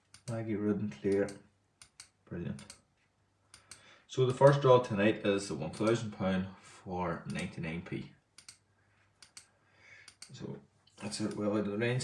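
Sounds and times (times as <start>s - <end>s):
computer mouse clicks: 0.0s - 0.4s, 1.0s - 2.9s, 3.5s - 4.6s, 5.7s - 6.1s, 7.3s - 7.5s, 8.4s - 11.5s.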